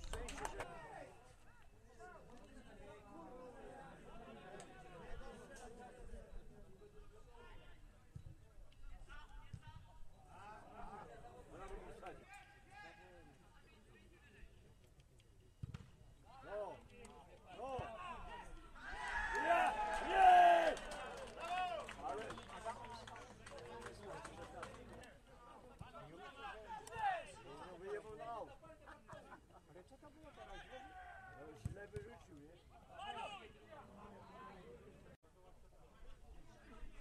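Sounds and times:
distant shouts of footballers: 0:17.6 - 0:22.1, 0:30.3 - 0:31.6.

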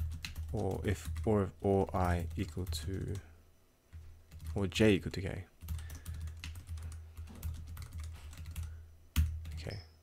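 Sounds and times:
steady low hum: 0:00.0 - 0:10.0
keyboard typing clicks: 0:05.6 - 0:09.8.

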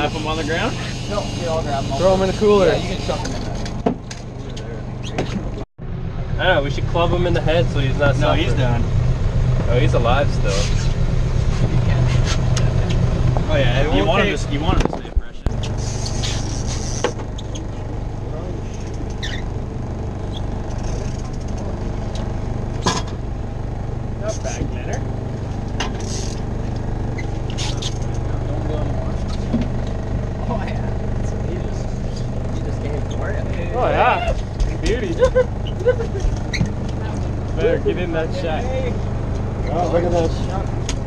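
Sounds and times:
boat engine humming: 0:00.0 - 0:41.0.

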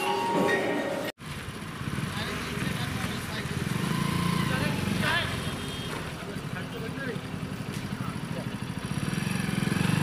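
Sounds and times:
motorcycle engine approaching: 0:01.2 - 0:10.0.

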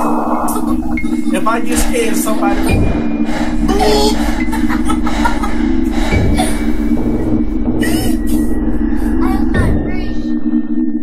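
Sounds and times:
wavering higher sound: 0:00.0 - 0:10.8
low drone with rumble: 0:00.0 - 0:11.0.

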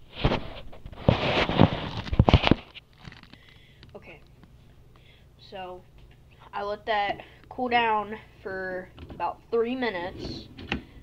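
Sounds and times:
phone rubbing and scraping: 0:00.0 - 0:02.8.

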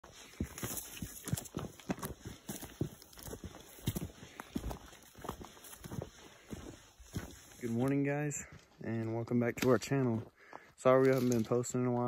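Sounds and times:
footsteps in boots on rocky dirt: 0:00.0 - 0:12.0.

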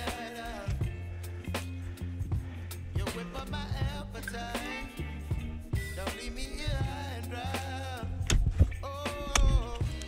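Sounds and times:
pop song with vocals: 0:00.0 - 0:10.0.

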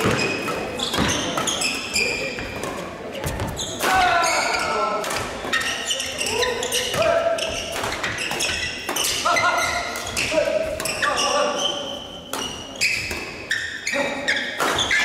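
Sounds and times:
racket hitting shuttlecock: 0:00.0 - 0:01.8, 0:06.7 - 0:11.1, 0:12.3 - 0:13.5, 0:14.5 - 0:15.0
shoes squeaking on wooden floor: 0:00.0 - 0:04.8, 0:05.5 - 0:15.0.

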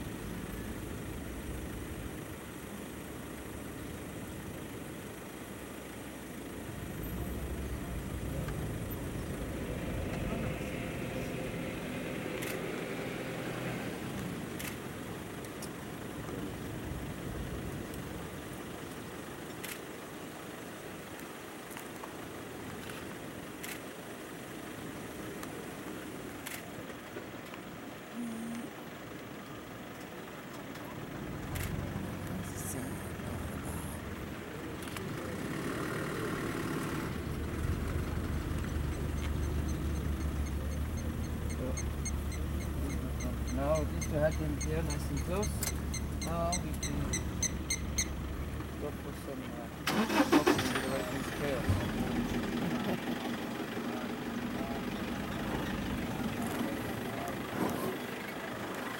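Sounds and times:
vehicle engine idling: 0:00.0 - 0:58.9
faint low voices: 0:50.5 - 0:58.9.

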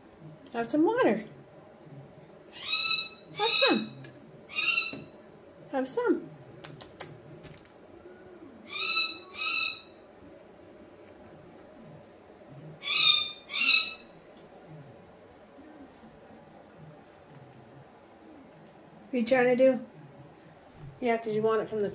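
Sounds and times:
cockatoo calling: 0:02.5 - 0:05.2, 0:08.0 - 0:10.1, 0:12.8 - 0:14.2.

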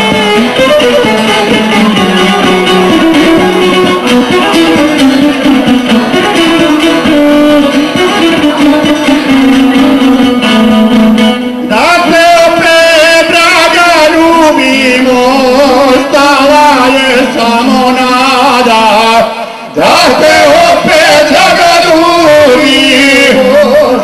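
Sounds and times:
plucked lute: 0:00.0 - 0:24.0
violin: 0:00.0 - 0:24.0
man singing: 0:11.7 - 0:24.0.

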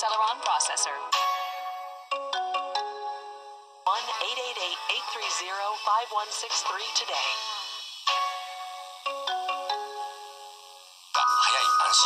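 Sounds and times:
bell-like chiming jingle: 0:11.2 - 0:12.0.

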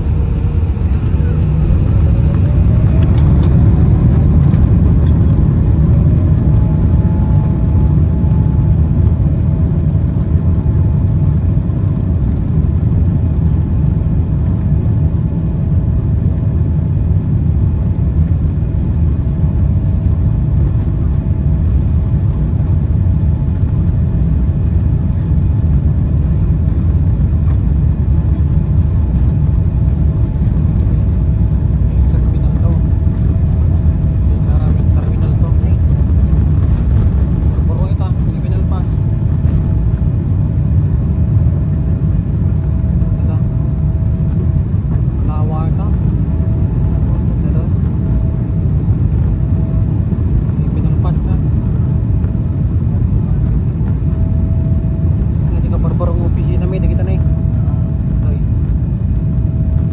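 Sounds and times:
jet engines whining: 0:00.0 - 0:17.7, 0:18.3 - 0:59.9
low rumble of rolling airliner: 0:00.0 - 0:59.9.

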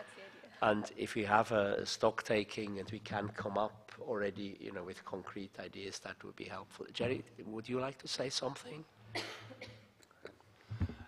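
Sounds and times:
person coughing: 0:09.1 - 0:09.9.

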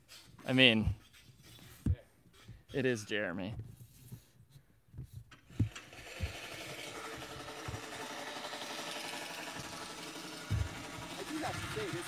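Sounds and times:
dull thumps: 0:00.8 - 0:02.8, 0:10.4 - 0:11.0
reel mower whirring: 0:05.3 - 0:12.0.

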